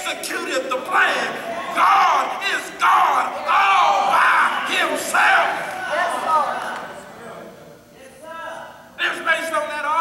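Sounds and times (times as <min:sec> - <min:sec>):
preacher shouting: 0:00.0 - 0:06.8
congregation calling out: 0:00.0 - 0:10.0.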